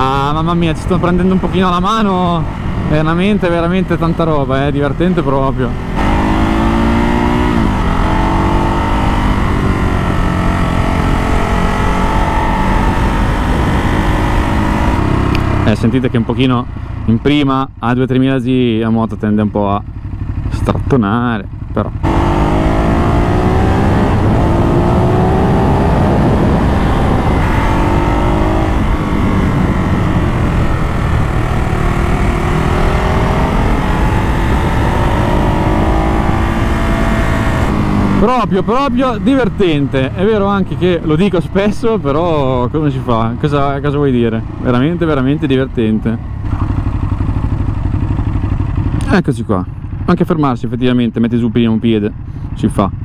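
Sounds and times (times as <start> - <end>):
motorcycle engine accelerating: 0.0 - 53.0.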